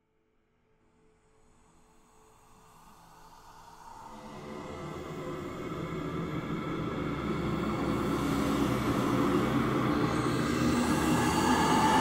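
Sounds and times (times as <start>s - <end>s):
rumbling drone: 6.6s - 12.0s.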